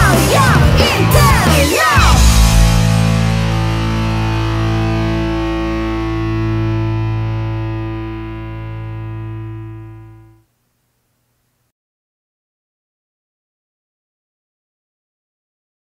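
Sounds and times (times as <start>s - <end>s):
distorted electric guitar and bass chord: 0.0s - 10.5s.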